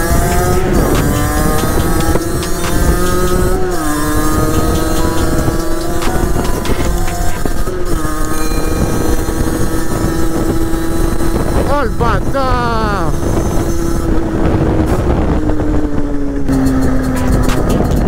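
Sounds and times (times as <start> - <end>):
motorbike engine revving: 0.0 - 18.0
wind buffeting microphone: 0.0 - 18.0.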